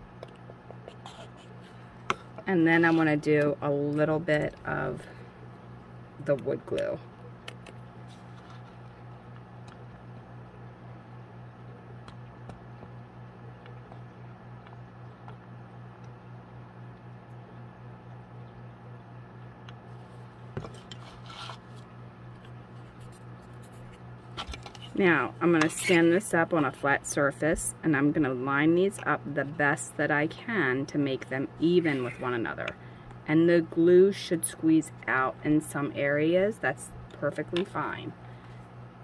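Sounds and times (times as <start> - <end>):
steady low hum: 0.0 - 39.0
light clicks and scrapes on desk: 20.7 - 21.8
scratchy rustle: 21.0 - 21.8.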